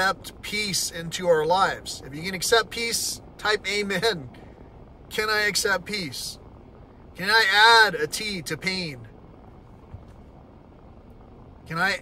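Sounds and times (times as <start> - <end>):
vehicle cabin rumble: 0.0 - 12.0
soft tap: 9.9 - 10.3.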